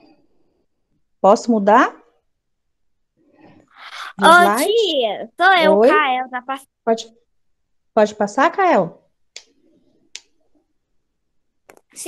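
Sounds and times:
faint low murmur: 0:03.9 - 0:04.7.

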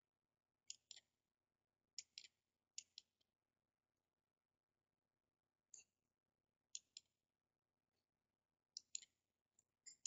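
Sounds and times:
computer mouse clicks: 0:00.7 - 0:01.1, 0:01.9 - 0:03.3, 0:06.7 - 0:07.1, 0:08.7 - 0:09.2, 0:09.8 - 0:10.0.

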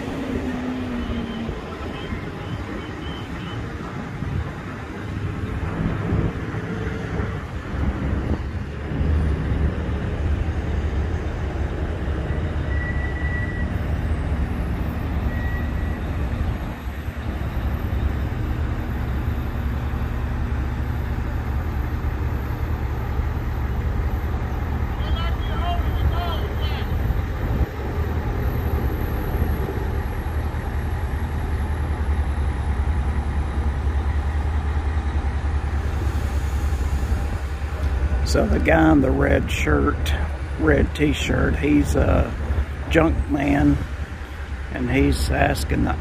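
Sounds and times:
crane engine running under load: 0:00.0 - 0:46.0.

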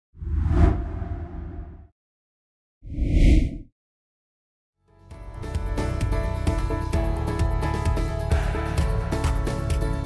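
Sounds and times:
whoosh with deep rumble: 0:00.2 - 0:01.9.

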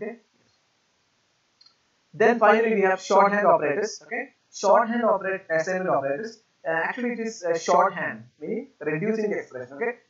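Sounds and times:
faint click: 0:01.6 - 0:01.8.

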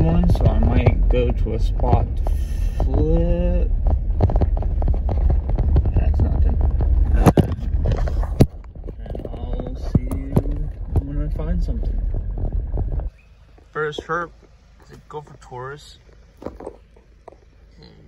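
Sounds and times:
rattles and knocks over bumps: 0:00.0 - 0:17.8
vehicle engine and tyres rumbling: 0:00.0 - 0:18.0.

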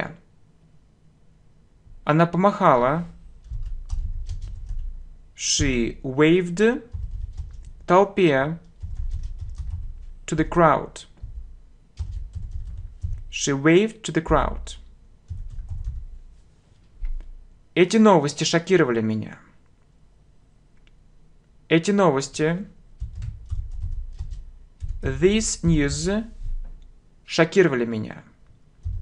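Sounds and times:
typing on computer keyboard: 0:03.4 - 0:04.9, 0:06.8 - 0:07.9, 0:08.6 - 0:10.5, 0:11.1 - 0:13.4, 0:15.3 - 0:16.1, 0:23.0 - 0:25.2, 0:28.8 - 0:29.0.

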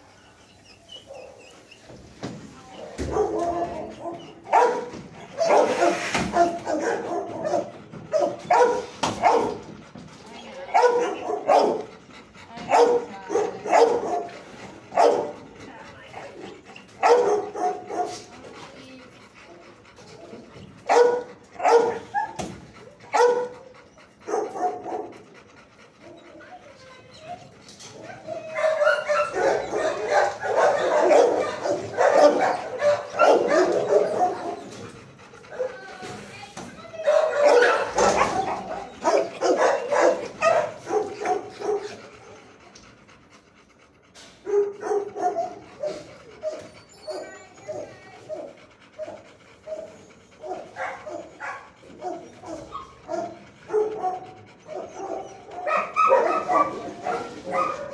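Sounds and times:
dogs whining: 0:00.0 - 0:57.9
dogs barking: 0:02.8 - 0:42.5, 0:44.4 - 0:57.9.

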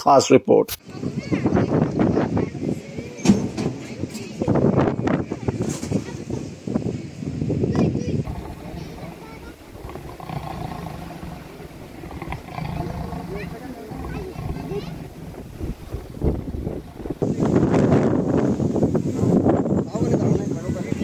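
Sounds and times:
leopard growling: 0:08.2 - 0:18.6
men's voices and commotion: 0:08.2 - 0:21.0.

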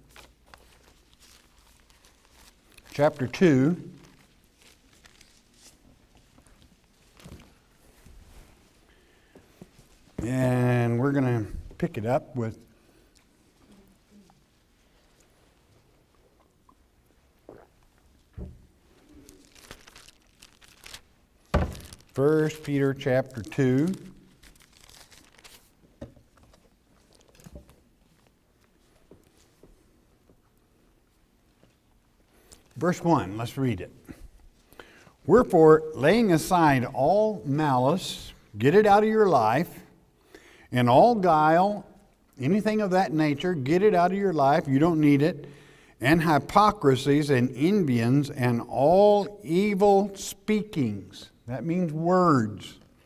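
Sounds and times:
thin pages being turned: 0:00.0 - 0:03.0, 0:04.0 - 0:07.6, 0:19.3 - 0:25.8.

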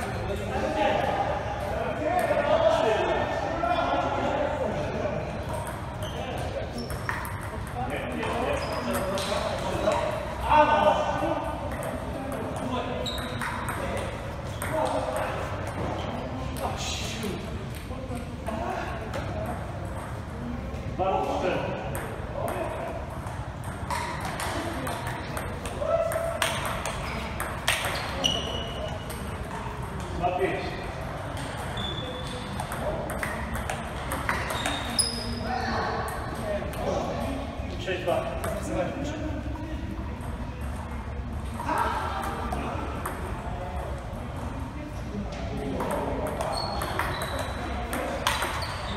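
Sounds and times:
voices in background: 0:00.0 - 0:48.9
table tennis ball hits: 0:05.5 - 0:10.2, 0:11.6 - 0:15.9, 0:21.9 - 0:30.1, 0:31.1 - 0:35.2, 0:45.8 - 0:48.9.

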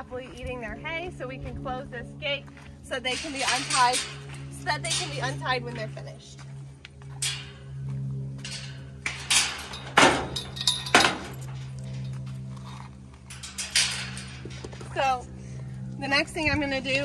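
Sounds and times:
steady low hum: 0:00.0 - 0:17.0
metal gate clanking: 0:03.0 - 0:06.0, 0:07.1 - 0:15.3.

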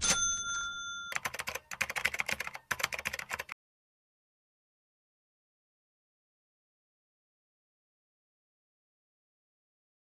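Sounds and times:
bell-like ding: 0:00.0 - 0:01.3.

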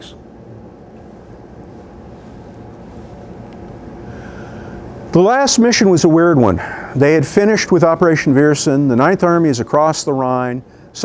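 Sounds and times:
low hum of ventilation: 0:00.0 - 0:11.0.

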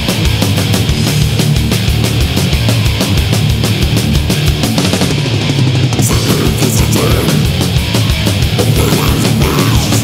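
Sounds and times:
distorted guitars and bass: 0:00.0 - 0:10.0
fast drumming with cymbals: 0:00.0 - 0:10.0.

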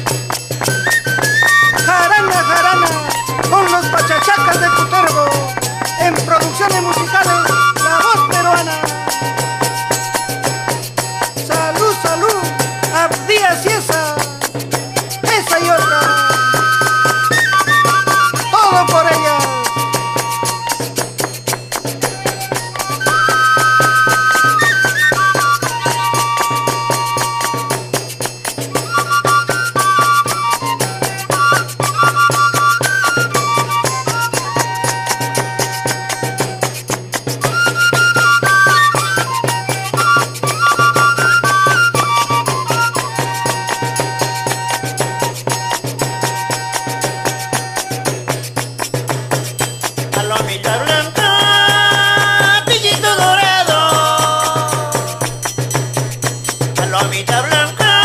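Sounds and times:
lead instrument melody: 0:00.0 - 0:51.2
folk band playing instrumental music: 0:00.0 - 0:58.0.

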